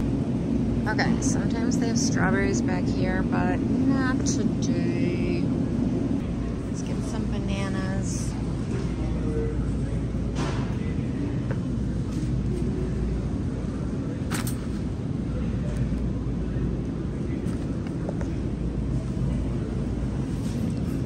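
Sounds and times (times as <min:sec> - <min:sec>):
supermarket background rumble: 0:00.0 - 0:21.0.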